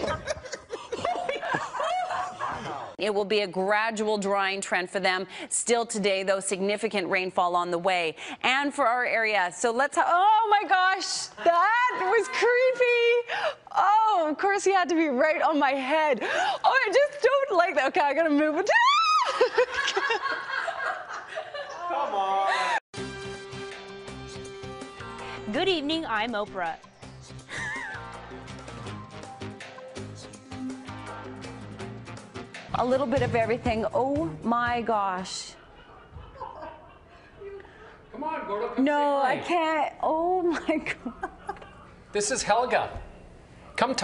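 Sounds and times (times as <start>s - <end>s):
woman laughing nervously: 0.0s - 2.9s, 27.5s - 28.2s
people chuckling: 0.0s - 3.0s, 27.5s - 28.5s, 35.6s - 38.0s, 40.6s - 42.1s.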